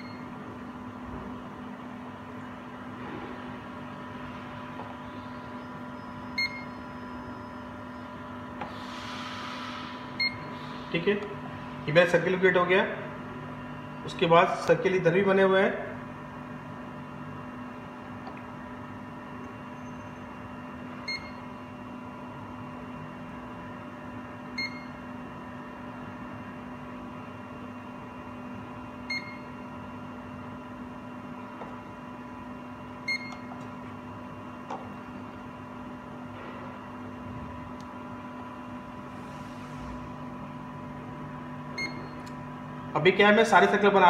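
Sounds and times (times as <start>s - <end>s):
short machine beeps: 0.0s - 0.3s, 6.0s - 8.0s, 10.2s - 10.5s, 21.0s - 21.5s, 24.6s - 25.0s, 29.1s - 29.6s, 33.0s - 33.5s, 41.7s - 42.2s
steady machine hum: 0.0s - 44.0s.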